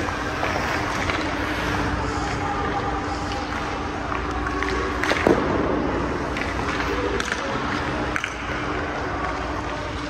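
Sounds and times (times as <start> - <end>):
skate blades scraping ice: 0.0 - 3.7
ice arena hum: 0.0 - 10.0.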